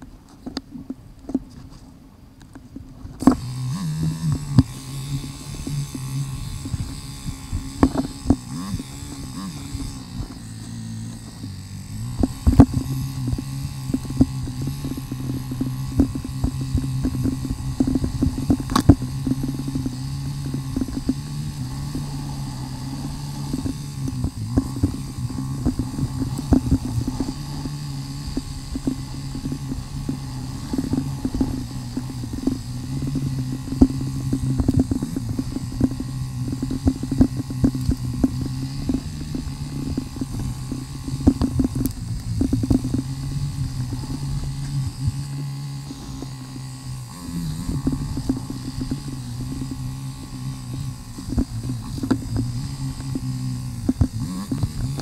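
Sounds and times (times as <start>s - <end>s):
knocks and rattles of bike: 0.0s - 55.0s
motorcycle engine at low revs: 0.0s - 55.0s.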